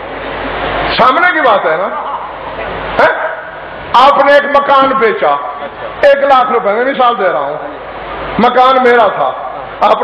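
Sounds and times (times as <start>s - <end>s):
man speaking over public address: 0.9s - 10.0s.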